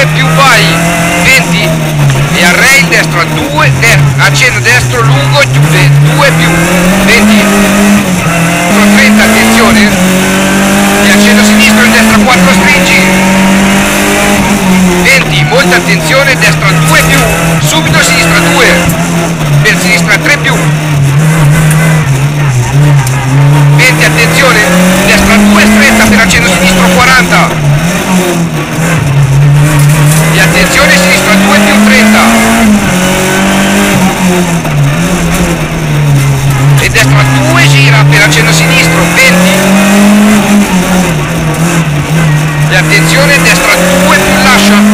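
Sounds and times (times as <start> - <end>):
rally car engine revving: 0.0 - 44.9.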